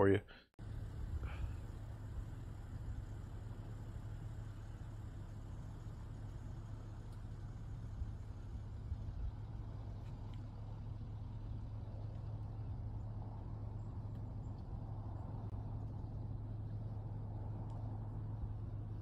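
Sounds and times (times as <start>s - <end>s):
low outdoor rumble: 0.0s - 19.0s.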